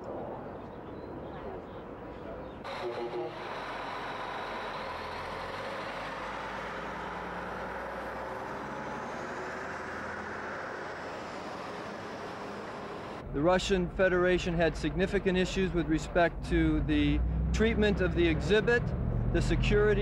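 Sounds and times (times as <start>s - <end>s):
road noise: 0.0s - 20.0s
truck engine running: 2.7s - 20.0s.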